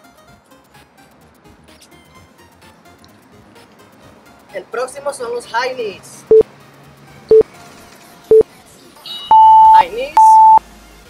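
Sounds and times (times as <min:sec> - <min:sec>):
timer countdown beeps: 0:09.3 - 0:10.6.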